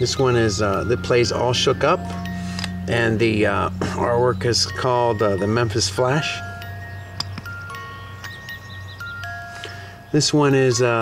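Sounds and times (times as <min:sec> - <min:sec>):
music box playing slow tune: 0:00.0 - 0:11.0
steady low hum: 0:00.0 - 0:11.0.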